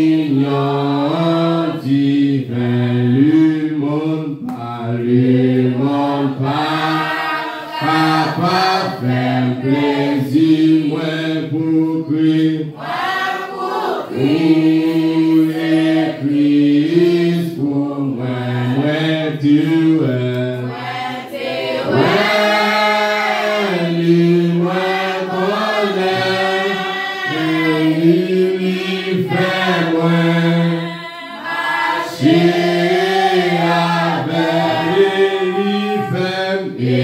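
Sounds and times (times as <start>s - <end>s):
man singing through a microphone: 0.0s - 7.1s, 7.8s - 12.8s, 14.2s - 20.7s, 22.0s - 30.9s, 32.1s - 37.0s
congregation singing a hymn: 0.0s - 37.0s.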